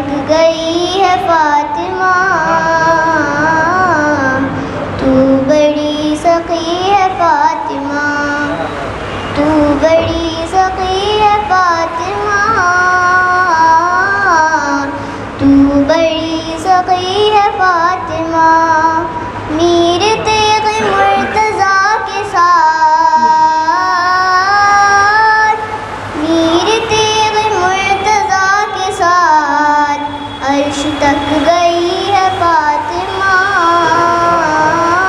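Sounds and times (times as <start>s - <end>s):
girl singing into a microphone: 0.0s - 8.7s, 9.3s - 35.0s.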